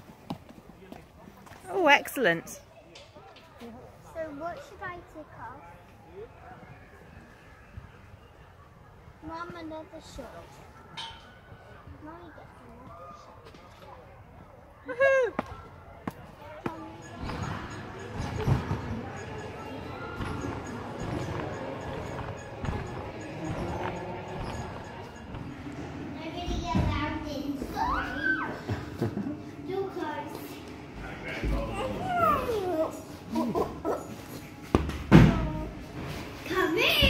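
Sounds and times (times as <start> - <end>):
toddler babbling: 31.7 - 32.9.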